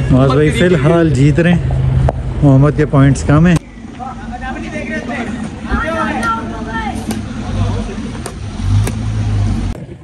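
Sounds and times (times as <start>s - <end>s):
racket striking shuttlecock: 8.2s - 9.0s.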